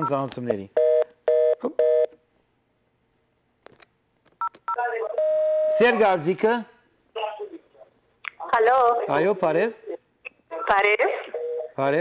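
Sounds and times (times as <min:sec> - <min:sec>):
telephone busy signal: 0:05.2 - 0:05.8.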